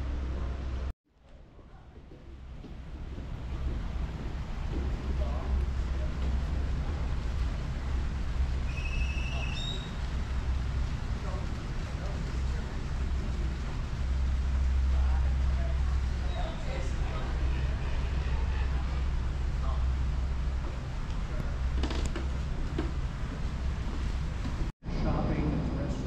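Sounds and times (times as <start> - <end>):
wind rumble on microphone: 1.6 - 26.0.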